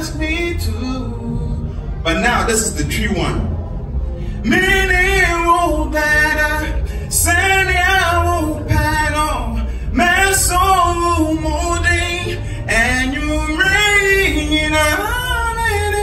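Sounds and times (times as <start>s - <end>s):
man singing into microphone: 0.0s - 2.8s, 4.4s - 16.0s.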